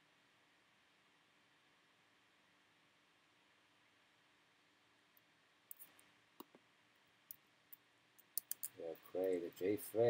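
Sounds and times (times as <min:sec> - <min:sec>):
computer keyboard key clicks: 0:08.2 - 0:08.7
person speaking: 0:08.4 - 0:10.0.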